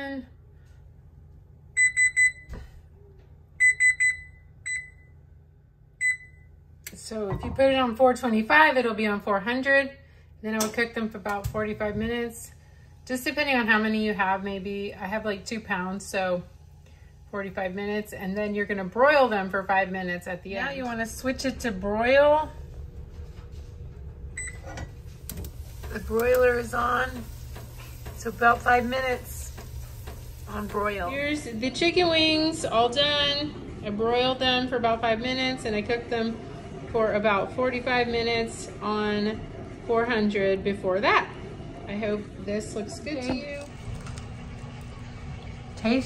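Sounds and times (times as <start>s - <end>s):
oven control panel beeps: 1.8s - 2.8s, 3.6s - 5.3s, 6.0s - 6.6s, 24.4s - 31.0s
low hum: 11.0s - 46.0s.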